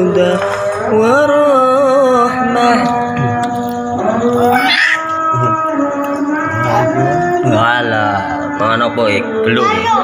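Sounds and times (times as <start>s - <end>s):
person chanting devotional song: 0.0s - 10.0s.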